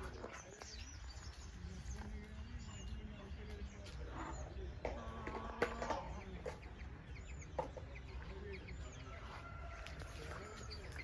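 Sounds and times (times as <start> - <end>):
chickens clucking: 0.0 - 11.0
small birds chirping: 0.0 - 11.0.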